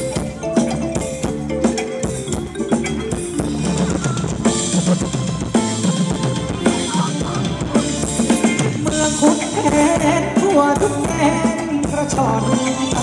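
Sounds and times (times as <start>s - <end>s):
drums keeping steady beat: 0.0s - 13.0s
pitched instruments playing tune: 0.0s - 13.0s.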